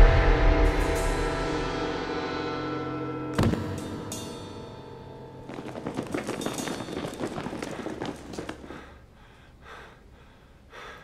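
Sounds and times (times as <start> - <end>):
man gasping breaths: 8.6 - 11.0.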